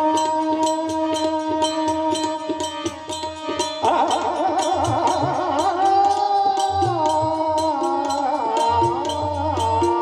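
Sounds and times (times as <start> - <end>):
harmonium drone: 0.0 - 10.0
man singing: 0.0 - 10.0
frame drums beating: 0.4 - 10.0.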